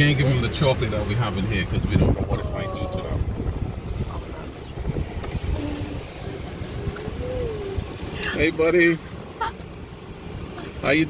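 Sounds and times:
wind buffeting microphone: 1.2s - 8.4s.

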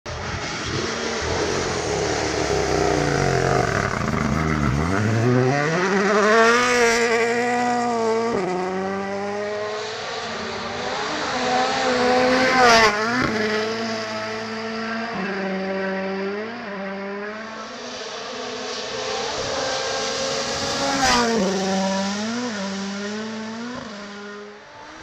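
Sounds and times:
rally car engine revving: 0.1s - 25.0s.

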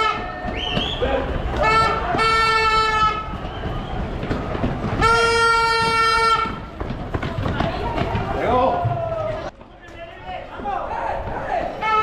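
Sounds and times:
running footsteps on stone: 0.0s - 11.8s
crowd noise: 0.0s - 12.0s
loud horn blast: 1.5s - 3.4s, 5.0s - 6.7s.

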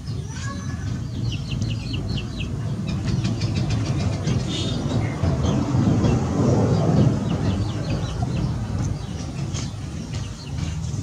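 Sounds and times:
birds chirping: 0.0s - 11.0s
steady low outdoor rumble: 0.0s - 11.0s.

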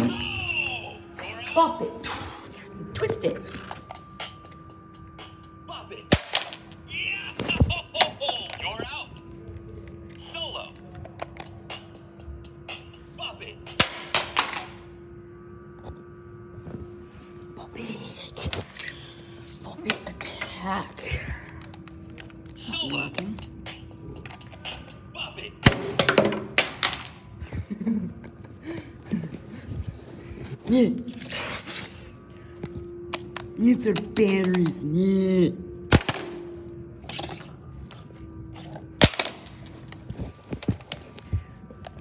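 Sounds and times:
toy electronic music: 0.0s - 13.8s, 20.2s - 26.1s.

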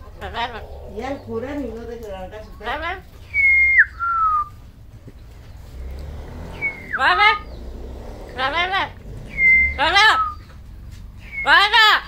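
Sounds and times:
parrot whistling: 3.3s - 4.6s, 6.5s - 7.5s, 9.3s - 10.5s.

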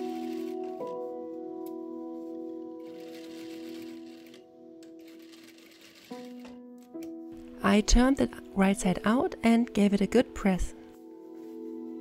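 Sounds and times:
soft piano chords: 0.0s - 12.0s.

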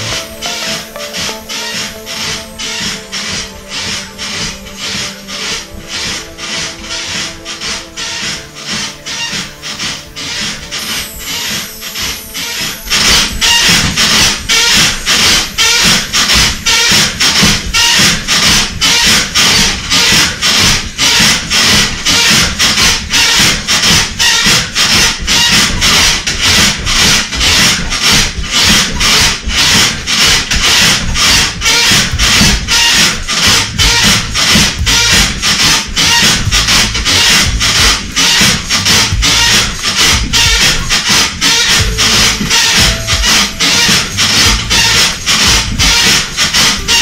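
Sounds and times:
background music: 0.0s - 47.0s
trampoline springs creaking: 0.0s - 47.0s.

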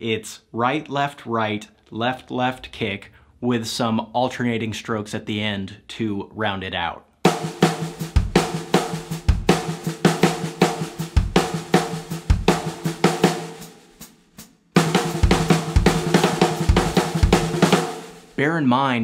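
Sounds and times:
snare drum strokes: 7.3s - 18.4s
bass drum hits: 14.8s - 18.0s.

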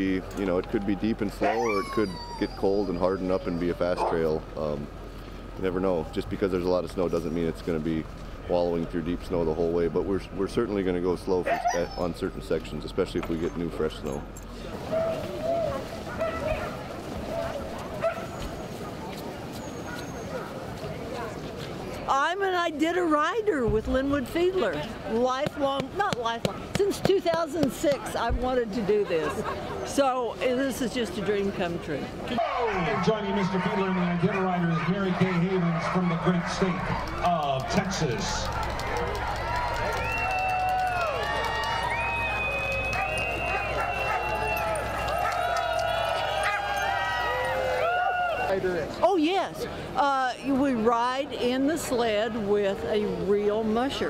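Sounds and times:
sled dogs yipping and whining: 0.4s - 4.5s, 11.4s - 12.3s, 13.4s - 20.7s, 32.3s - 37.3s, 38.4s - 48.6s.

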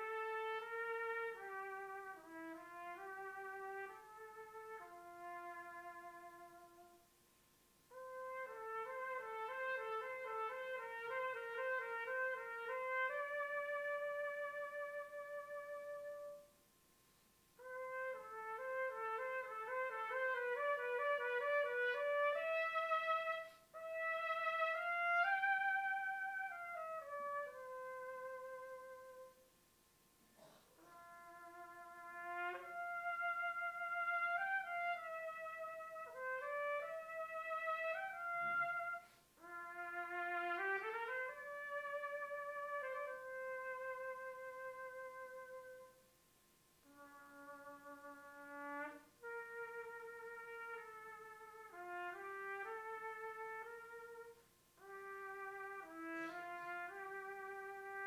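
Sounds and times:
solo trumpet melody: 0.0s - 7.2s, 7.8s - 16.6s, 17.5s - 29.5s, 30.4s - 46.2s, 46.8s - 58.0s.

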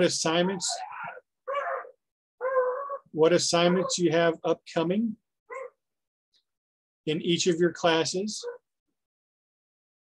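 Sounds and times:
high-pitched animal call: 0.6s - 3.1s.

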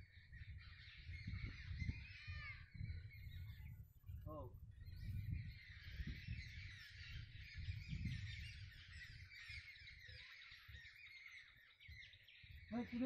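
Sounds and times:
low rumble on microphone: 0.0s - 10.8s
small birds chirping: 0.0s - 13.0s.

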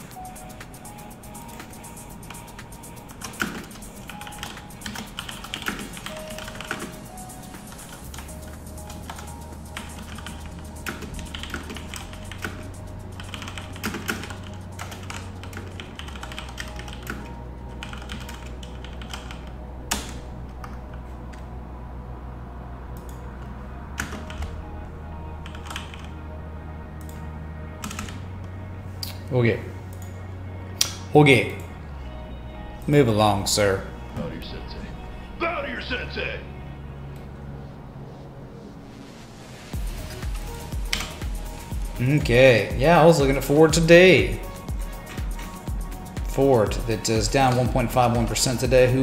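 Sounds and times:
computer keyboard typing: 0.0s - 21.4s, 24.0s - 24.6s, 25.4s - 26.1s, 27.8s - 28.2s
music with slow bass line: 7.1s - 39.1s, 39.7s - 49.0s.

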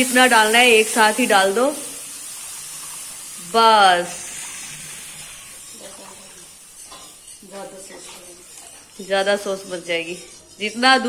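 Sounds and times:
sauce sizzling: 0.0s - 11.0s
wire whisk whisking: 0.0s - 11.0s
milk being poured: 1.8s - 7.4s.

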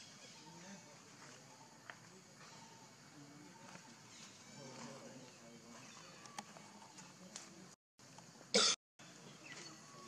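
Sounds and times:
faint outdoor background: 0.0s - 10.0s.

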